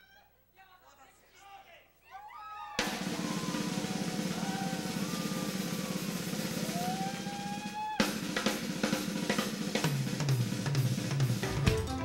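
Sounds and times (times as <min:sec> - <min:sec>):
jazz fusion band playing: 0:11.2 - 0:12.0.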